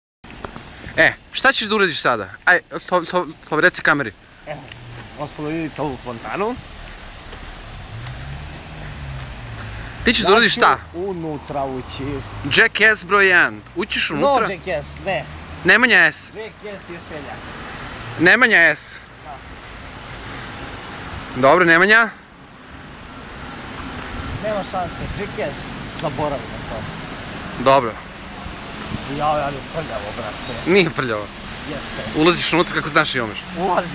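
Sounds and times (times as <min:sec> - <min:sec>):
city street traffic rumble: 0:00.2 - 0:33.9
car engine droning: 0:04.4 - 0:12.5.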